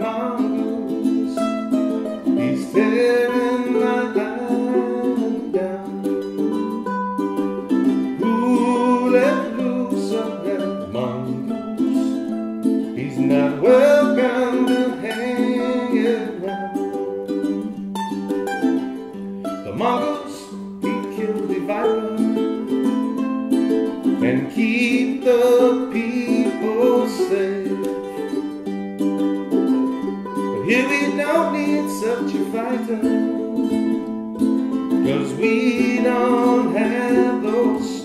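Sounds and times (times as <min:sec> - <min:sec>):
two ukuleles playing: 0:00.0 - 0:38.0.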